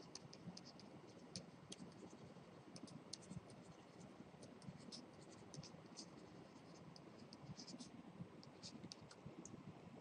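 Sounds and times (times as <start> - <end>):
pen scratching on paper: 0.0 - 9.2
low background hiss: 0.0 - 10.0.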